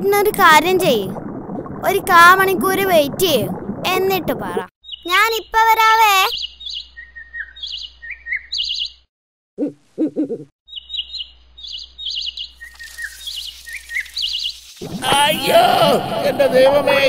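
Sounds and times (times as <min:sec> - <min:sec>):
small birds chirping: 0:04.8 - 0:09.1, 0:10.2 - 0:14.9.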